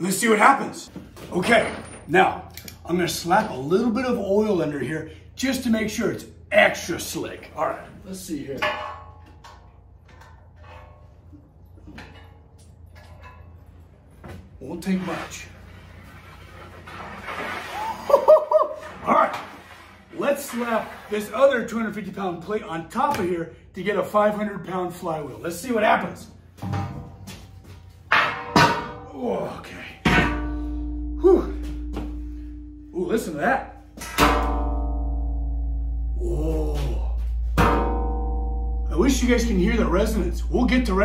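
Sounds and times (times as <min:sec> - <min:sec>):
steady low hum: 0:26.3 - 0:41.0.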